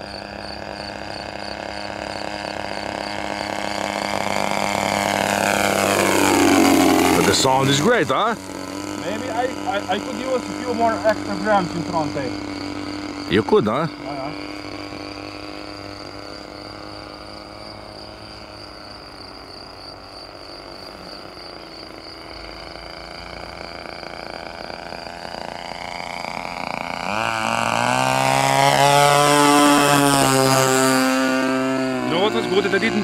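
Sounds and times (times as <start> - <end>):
model plane engine flying by: 0.0 - 33.0.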